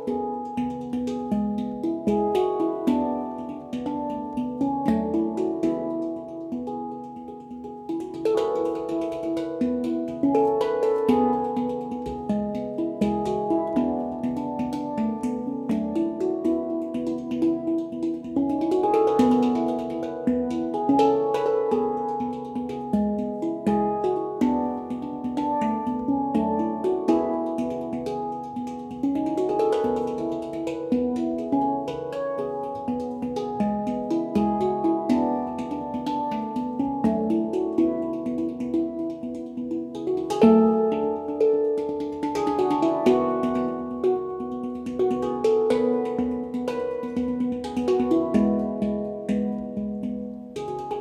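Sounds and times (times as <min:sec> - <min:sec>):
handpan melody: 0:00.0 - 0:51.0
light percussive taps: 0:00.0 - 0:51.0.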